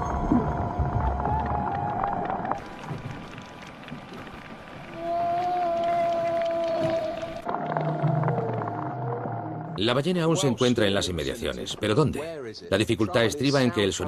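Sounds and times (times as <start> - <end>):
whale calls underwater: 5.0 - 9.8.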